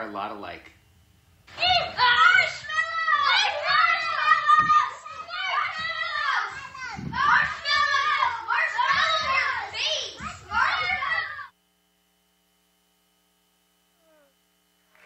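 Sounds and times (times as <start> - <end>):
children shouting and shrieking: 1.5 - 11.5.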